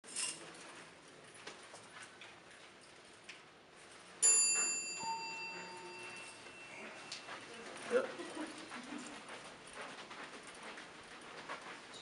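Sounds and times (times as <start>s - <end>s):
bell-like ring: 4.2s - 7.5s.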